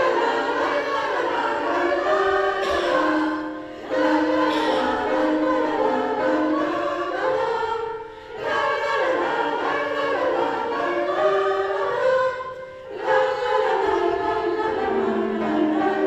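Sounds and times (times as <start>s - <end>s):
women's choir singing: 0.0s - 16.0s.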